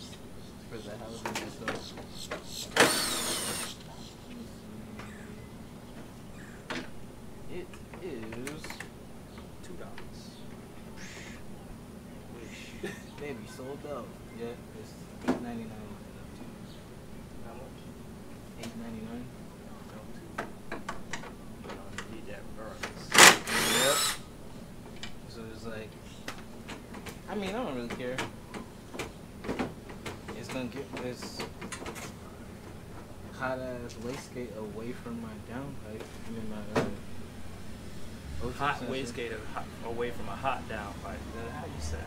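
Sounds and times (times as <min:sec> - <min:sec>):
power drill motor whine: 0:02.7 - 0:03.8, 0:23.2 - 0:24.2.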